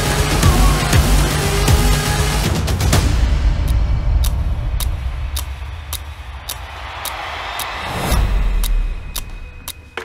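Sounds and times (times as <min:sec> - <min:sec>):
clock ticking: 0:03.6 - 0:10.0.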